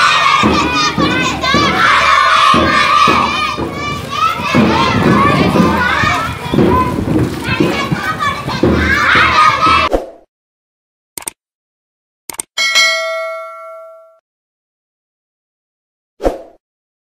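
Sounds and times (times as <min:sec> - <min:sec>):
children shouting slogans: 0:00.0 - 0:09.9.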